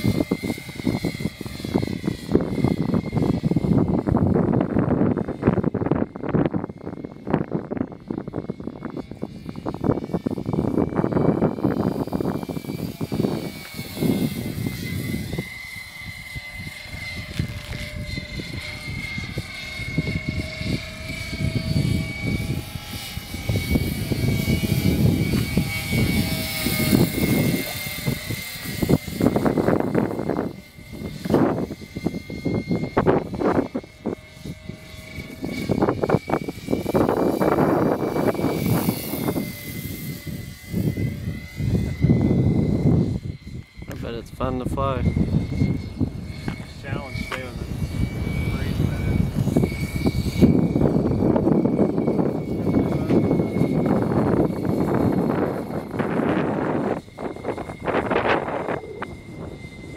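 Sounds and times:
model aircraft rotors whining: 0.0s - 59.9s.

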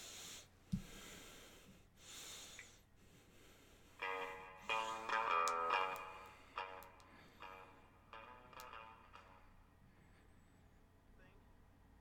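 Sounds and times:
soft breaths through nose: 0.0s - 4.0s.

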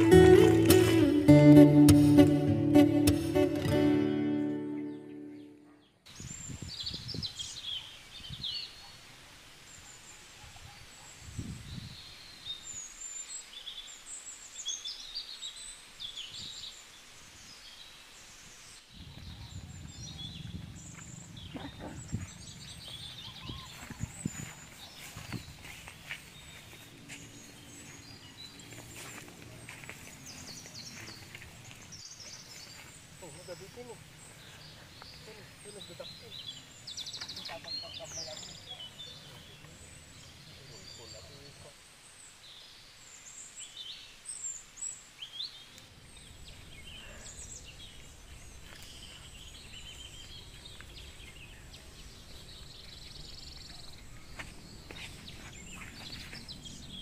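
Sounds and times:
small birds chirping: 3.0s - 57.0s.

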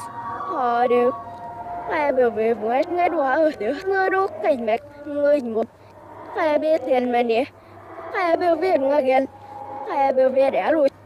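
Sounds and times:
girl speaking: 0.5s - 1.2s, 1.9s - 5.7s, 6.4s - 9.3s, 9.9s - 10.9s.

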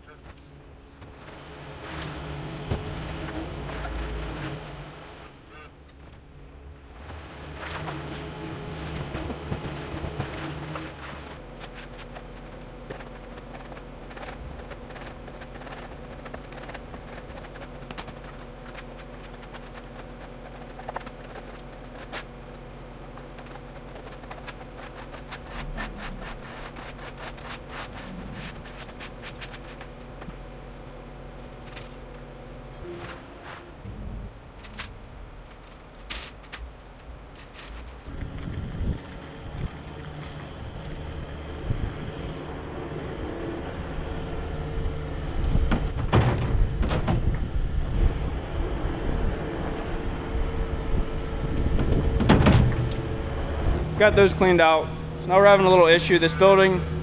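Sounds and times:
diesel loader engine running: 0.0s - 57.0s
scraper on wet concrete: 7.4s - 30.0s.

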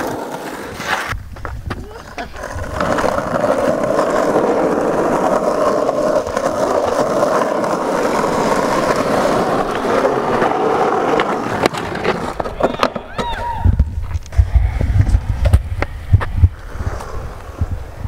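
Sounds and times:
skateboard clacks: 0.0s - 18.0s
skateboard wheels rolling on asphalt: 0.0s - 18.0s.

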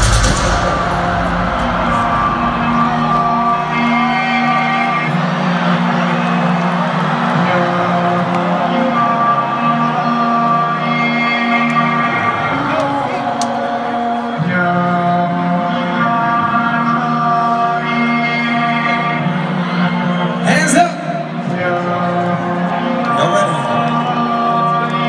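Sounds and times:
crowd whooping: 0.0s - 15.0s
large crowd noise: 0.0s - 25.0s
live concert music over pa: 0.0s - 25.0s.

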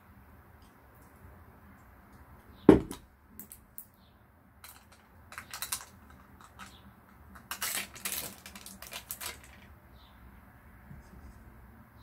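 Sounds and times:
plastic lid crinkly crackling: 4.6s - 6.7s, 7.4s - 9.7s.

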